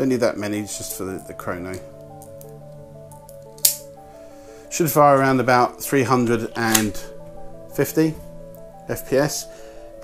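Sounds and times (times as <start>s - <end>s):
quiet background music: 0.0s - 10.0s
sharp click of magazine loading: 3.6s - 3.9s.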